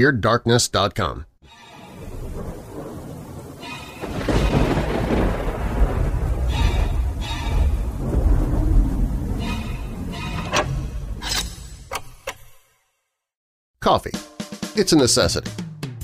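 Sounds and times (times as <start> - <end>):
heavy thunder-like rumble: 2.0 - 11.2.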